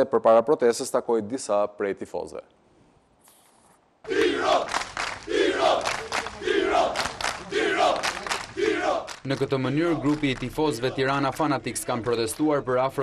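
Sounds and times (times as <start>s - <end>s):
crowd chanting in unison: 4.0s - 12.0s.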